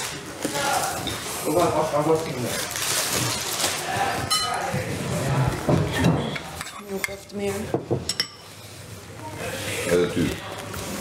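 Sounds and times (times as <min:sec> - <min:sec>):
cutlery clinking against plates: 0:04.3 - 0:04.7, 0:05.8 - 0:08.5.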